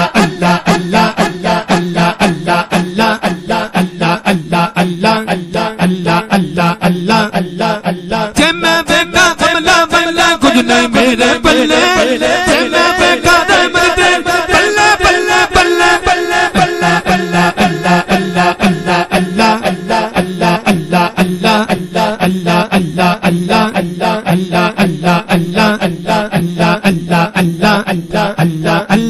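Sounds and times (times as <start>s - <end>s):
higher voice singing melody: 0.0s - 29.0s
men chanting: 0.0s - 29.0s.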